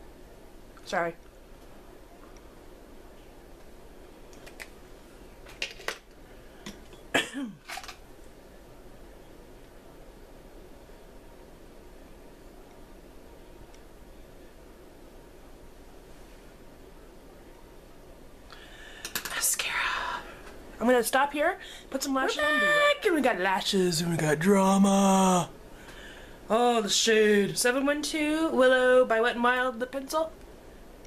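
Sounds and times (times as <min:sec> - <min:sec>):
woman speaking: 0:00.8 - 0:01.2, 0:20.8 - 0:25.5, 0:26.5 - 0:30.4
woman coughing: 0:07.1 - 0:07.6
woman whispering: 0:19.3 - 0:20.3.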